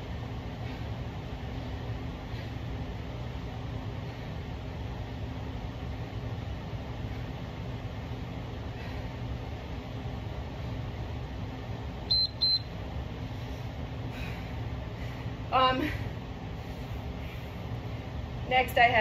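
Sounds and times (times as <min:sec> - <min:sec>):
steady low hum: 0:00.0 - 0:19.0
short high beeps: 0:12.1 - 0:12.6.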